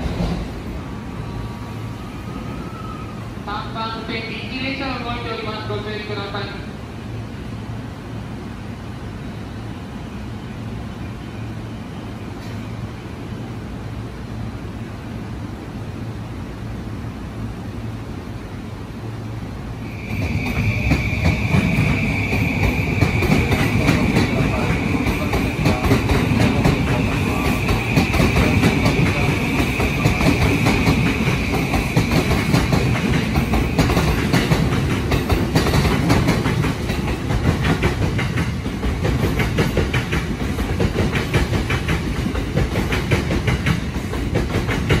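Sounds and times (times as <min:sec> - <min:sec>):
electric train passing: 0:00.0 - 0:45.0.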